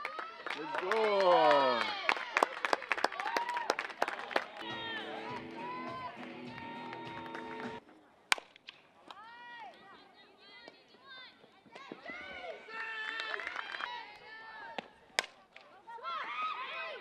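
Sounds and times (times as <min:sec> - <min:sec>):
players clapping: 0:00.0 - 0:07.8, 0:12.8 - 0:14.0
people shouting cheers: 0:00.6 - 0:02.1, 0:04.6 - 0:07.8
music with held notes: 0:04.6 - 0:07.8.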